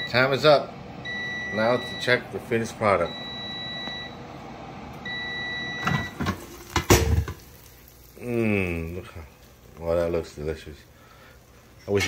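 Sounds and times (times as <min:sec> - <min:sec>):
air fryer long beep: 0:00.0 - 0:09.2.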